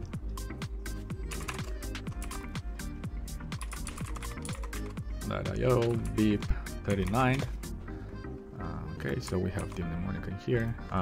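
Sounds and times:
background music with steady beat: 0.0s - 11.0s
computer keyboard typing: 1.1s - 2.6s, 3.5s - 5.0s, 6.9s - 7.5s, 9.2s - 9.9s.

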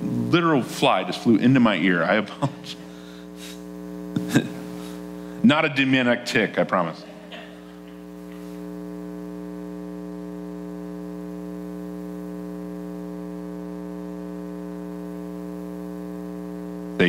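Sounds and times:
electrical mains hum: 0.0s - 17.0s.

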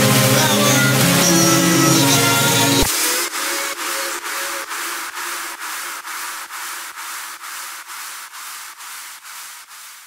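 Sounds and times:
pulsing synthesized noise hiss: 0.0s - 10.0s.

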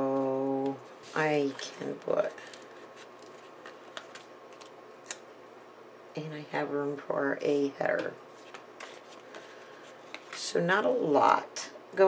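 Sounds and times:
paper sticker sheets rustling: 0.7s - 4.7s, 8.3s - 10.4s.

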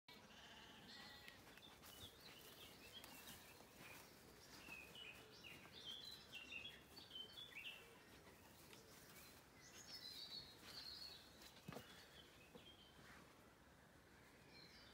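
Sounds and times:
faint sheep bleating: 0.1s - 1.4s
faint birdsong chirps: 0.1s - 14.9s.

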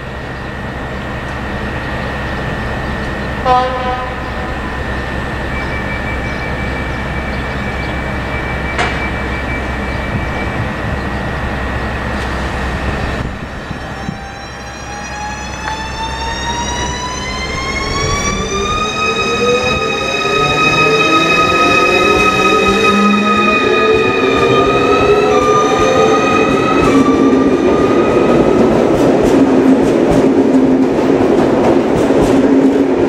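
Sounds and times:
steady high tone: 0.0s - 28.9s
electric train traction whine rising: 4.0s - 29.2s.

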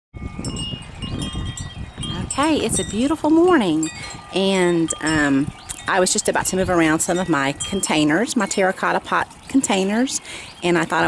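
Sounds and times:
tubular wind chimes ringing: 0.2s - 11.0s.

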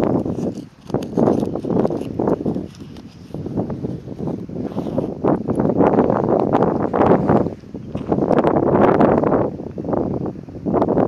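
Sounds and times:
wind buffeting the microphone: 0.0s - 11.0s.

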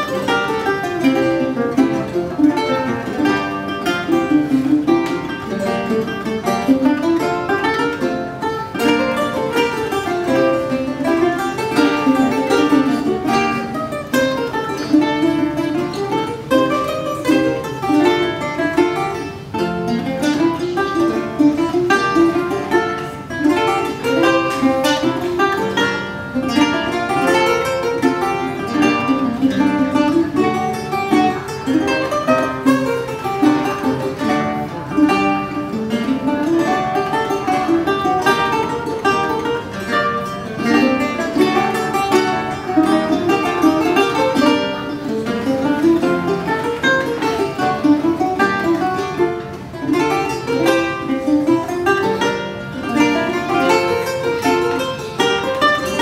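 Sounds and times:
lute and guitar duet: 0.0s - 56.0s.

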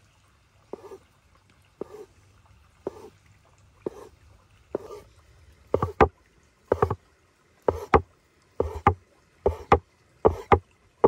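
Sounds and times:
knife chopping on wooden board: 5.8s - 6.1s, 6.7s - 7.0s, 7.7s - 8.0s, 8.6s - 10.6s.

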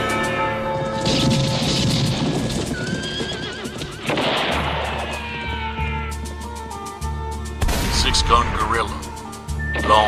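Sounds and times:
trailer music score: 0.0s - 10.0s
horse whinnying: 2.6s - 6.2s.

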